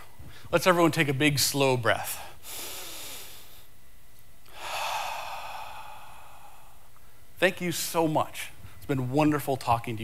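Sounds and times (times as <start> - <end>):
slow breath out: 4.5 - 6.8.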